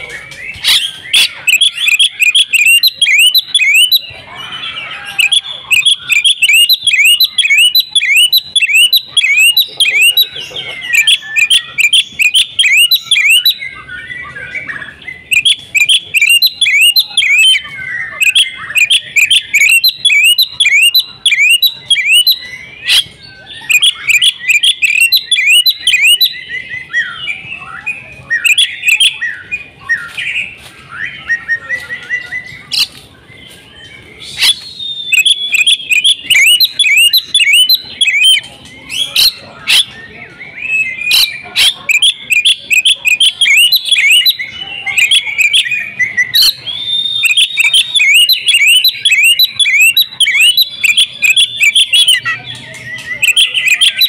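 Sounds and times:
bird singing whistled notes: 0.0 - 54.0.

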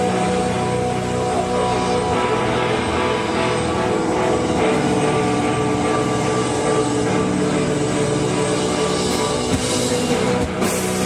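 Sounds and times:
bass guitar droning: 0.0 - 11.0
distorted electric guitars: 0.0 - 11.0.

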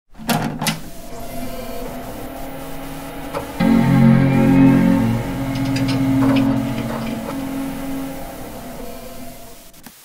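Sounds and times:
electronic intro music: 1.0 - 9.8.

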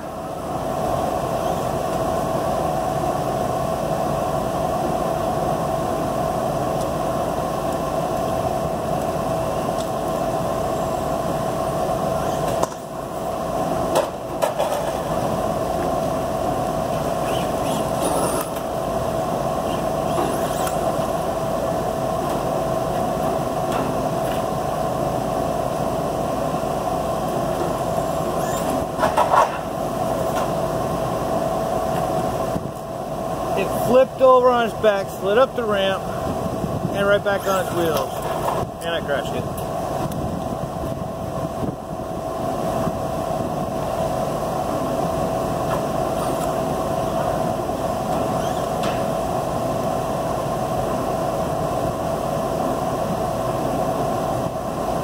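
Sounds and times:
steady mechanical hum: 0.0 - 55.0.

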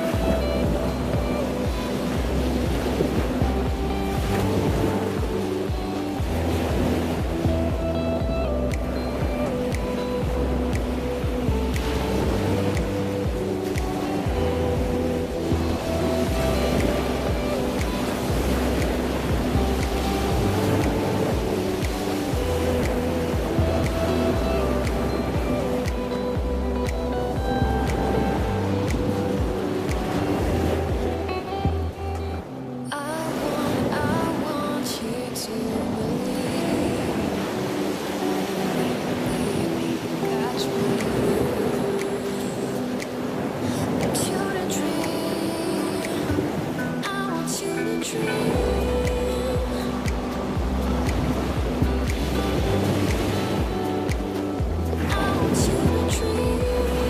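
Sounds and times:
slow melody over deep bass: 0.0 - 33.4, 44.9 - 57.0
background music held notes: 0.0 - 57.0
steady noisy wash: 0.0 - 57.0.

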